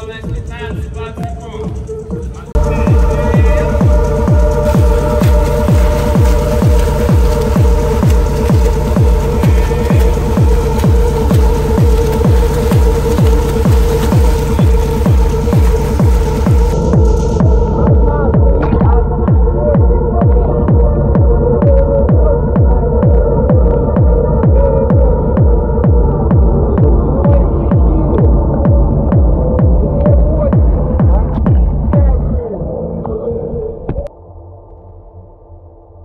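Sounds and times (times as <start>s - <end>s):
electronic music with steady beat: 0.0s - 33.3s.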